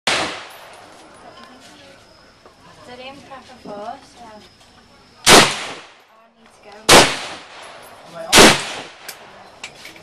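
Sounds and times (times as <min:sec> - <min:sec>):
rifle shot: 0:00.1 - 0:00.8, 0:05.2 - 0:06.0, 0:06.9 - 0:09.2.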